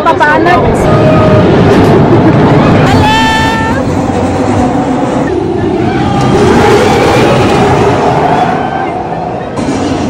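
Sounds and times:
people's voices: 0.0s - 4.0s
roller coaster rolling on track: 0.0s - 10.0s.

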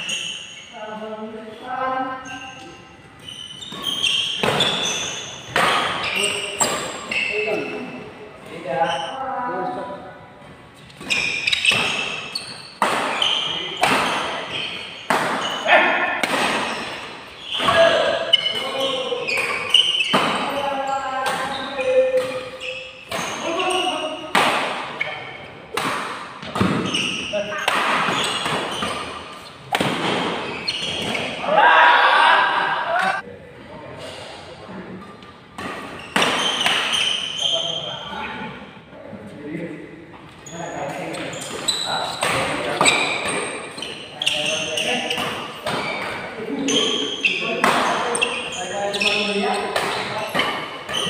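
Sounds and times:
voices: 0.0s - 35.3s, 40.4s - 51.0s
rackets hitting shuttlecock: 3.5s - 7.2s, 10.9s - 20.6s.

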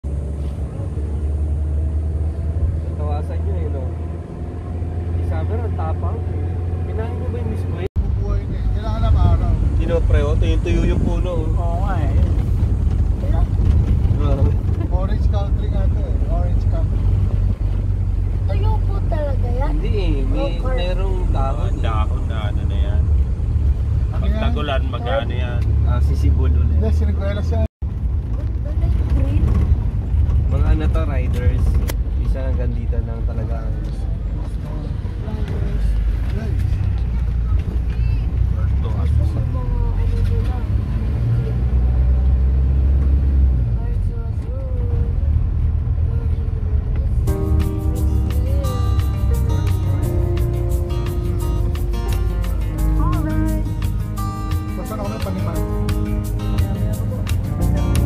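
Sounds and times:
vehicle engine droning: 0.0s - 58.0s
voices speaking: 18.4s - 23.0s, 46.2s - 58.0s.

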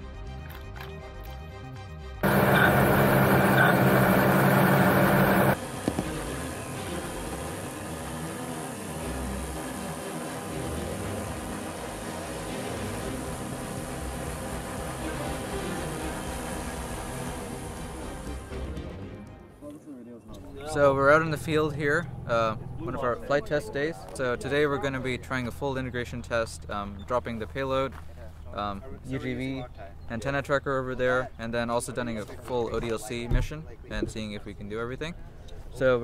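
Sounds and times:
background music: 0.0s - 5.6s, 6.7s - 20.2s
drone motors and propellers: 2.2s - 18.7s.

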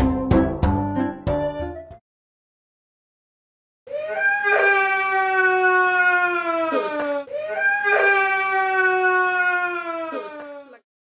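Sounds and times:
woman wailing: 3.9s - 10.8s.

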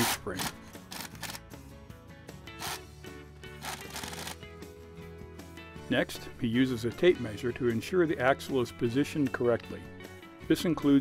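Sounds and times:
background music: 0.0s - 11.0s
pneumatic impact wrench rattling: 2.6s - 2.8s.

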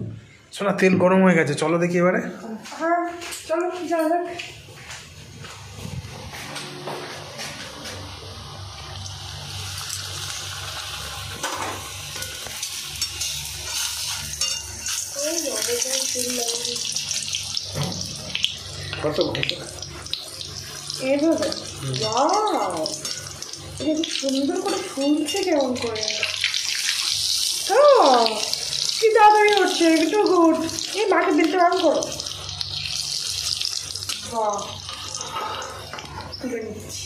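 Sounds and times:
hot oil sizzling: 7.2s - 37.0s.

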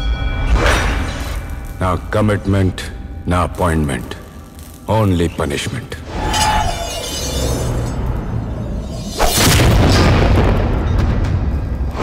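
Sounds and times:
loud rumbling boom: 9.3s - 12.0s.

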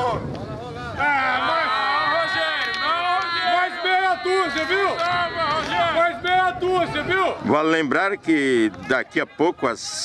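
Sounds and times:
people talking: 0.0s - 10.0s.

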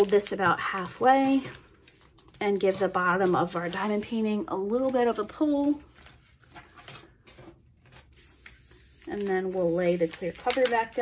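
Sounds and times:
plastic cover rustling: 0.0s - 8.2s, 9.0s - 11.0s.

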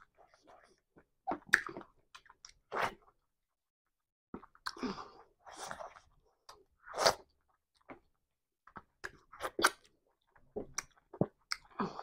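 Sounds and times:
chewing food: 5.5s - 12.0s.

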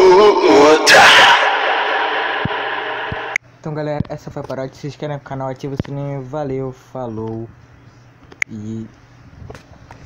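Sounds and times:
whoosh with echoing tail: 1.4s - 3.4s.

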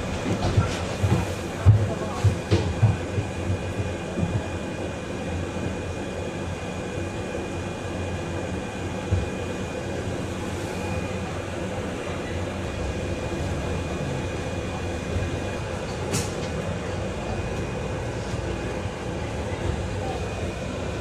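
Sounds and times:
electric bus drive hum: 0.0s - 21.0s
road rumble: 11.9s - 21.0s.

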